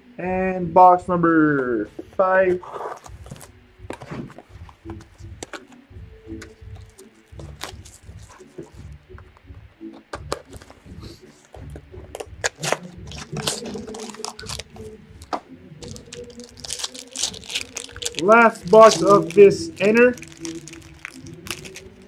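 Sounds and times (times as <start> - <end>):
plastic wrapping crinkling: 6.4 - 8.7, 12.4 - 22.0.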